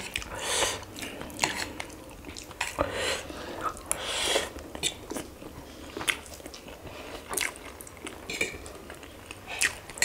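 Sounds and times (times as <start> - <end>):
wet chewing with mouth smacks: 0.0 - 2.9, 3.6 - 10.0.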